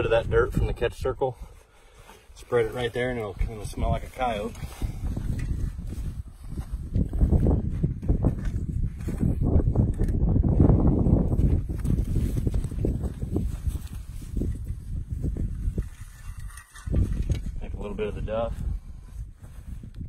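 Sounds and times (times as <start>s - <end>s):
soil scraping and rattling in sifter: 11.9s - 18.6s.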